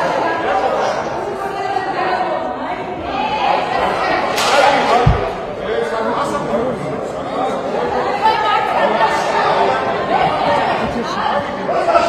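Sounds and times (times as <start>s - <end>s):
people arguing: 0.0s - 12.0s.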